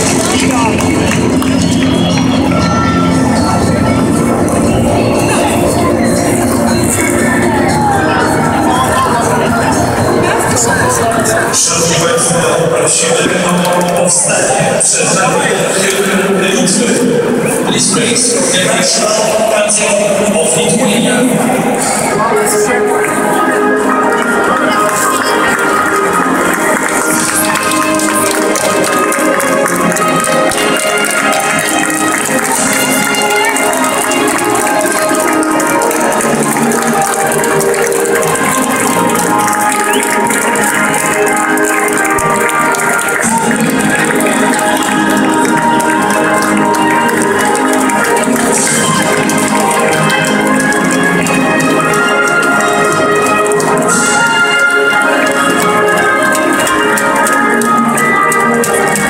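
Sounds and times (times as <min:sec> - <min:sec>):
anthem over stadium sound system: 0:00.0 - 0:59.0.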